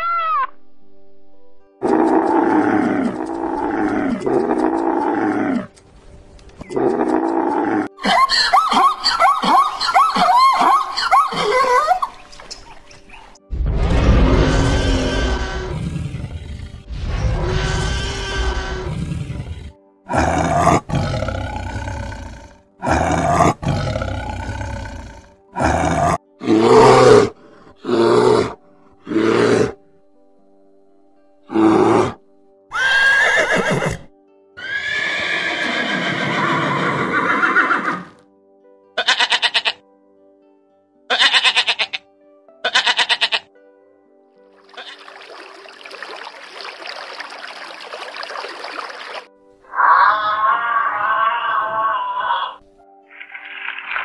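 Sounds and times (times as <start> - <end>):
background music: 0.0 - 54.0
animal cries and growls: 1.8 - 5.8, 6.6 - 8.5, 13.8 - 29.8, 49.7 - 52.6
animal roar: 1.8 - 5.8, 6.7 - 8.0, 13.8 - 29.8, 31.5 - 32.2, 49.7 - 52.6.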